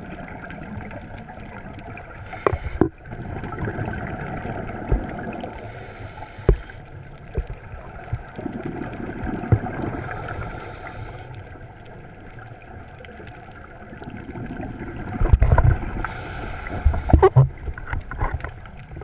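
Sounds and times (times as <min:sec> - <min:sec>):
exhaled bubbles: 0:00.0 - 0:11.3, 0:11.9 - 0:19.0
underwater regulator breathing: 0:02.1 - 0:03.0, 0:05.4 - 0:07.0, 0:08.8 - 0:11.8, 0:16.0 - 0:18.1.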